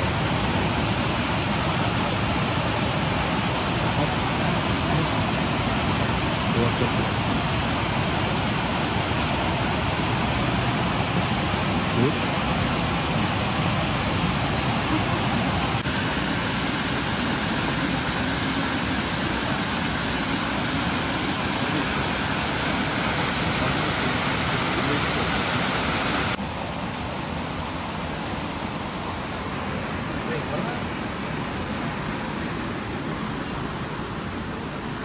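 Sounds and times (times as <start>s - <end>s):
flowing water rushing: 0.0s - 35.0s.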